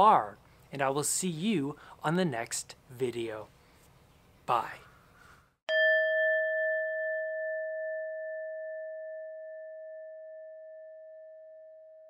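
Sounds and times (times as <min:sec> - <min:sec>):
bell chime ringing: 0:05.7 - 0:12.0.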